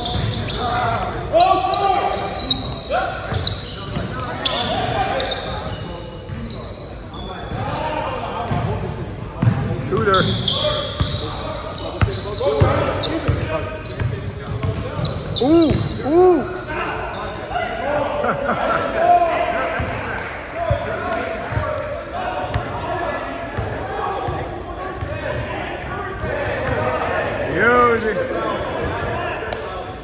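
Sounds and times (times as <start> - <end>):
sneakers squeaking: 0.0 - 17.8, 19.7 - 20.8
players calling out: 9.9 - 29.7.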